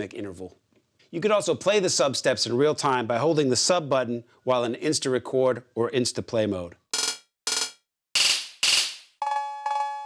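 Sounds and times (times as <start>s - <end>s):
short noisy drum machine hits: 7.0s - 9.2s
ringing bell-like metallic tones: 8.6s - 10.0s.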